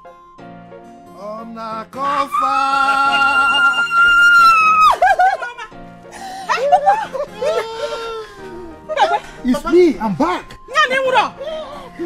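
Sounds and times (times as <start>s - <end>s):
background music: 0.0s - 12.0s
woman screaming with joy: 2.2s - 5.7s, 6.5s - 8.4s.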